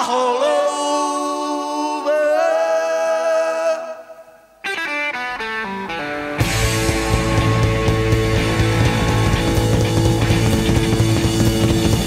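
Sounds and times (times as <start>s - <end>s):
distorted electric guitar riff: 4.7s - 12.0s
rock band music: 4.7s - 12.0s
drums and bass: 6.4s - 12.0s.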